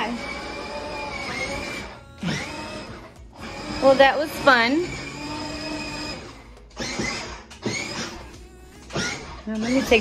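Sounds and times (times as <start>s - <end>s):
music playing: 0.0s - 10.0s
ride-on toy car whirring: 0.0s - 10.0s.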